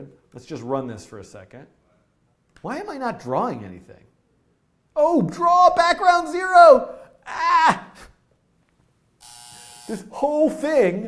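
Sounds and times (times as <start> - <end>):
man speaking: 0.0 - 1.8, 2.6 - 4.1, 5.0 - 7.8, 9.9 - 11.0
steady buzzing tone: 9.2 - 10.2.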